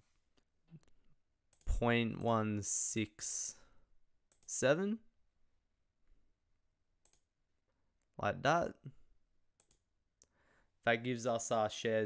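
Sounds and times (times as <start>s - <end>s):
computer mouse clicks: 4.3s - 4.5s, 7.0s - 7.3s, 9.6s - 10.3s
man's voice: 10.9s - 12.0s.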